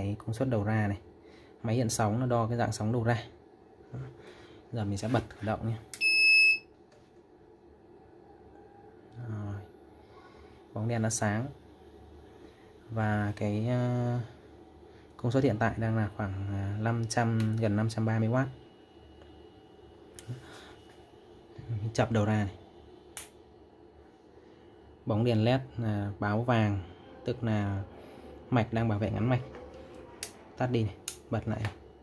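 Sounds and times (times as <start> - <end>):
high-pitched buzzer beep: 6.0 - 6.7.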